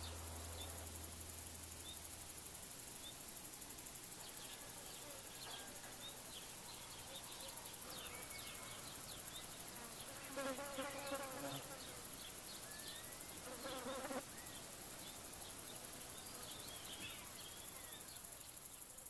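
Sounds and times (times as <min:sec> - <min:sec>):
insects chirring in pulses: 0:00.0 - 0:19.0
small birds chirping: 0:03.9 - 0:19.0.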